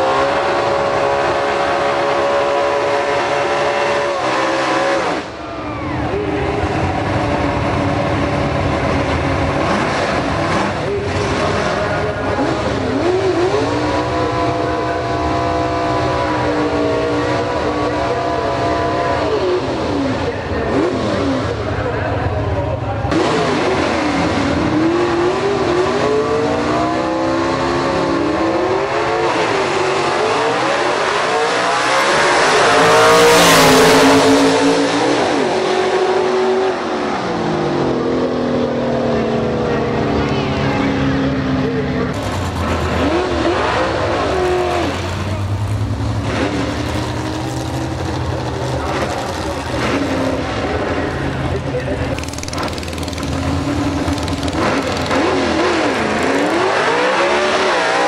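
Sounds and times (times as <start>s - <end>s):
cars launching and passing: 0.0s - 58.0s
drag car engines revving: 0.0s - 58.0s.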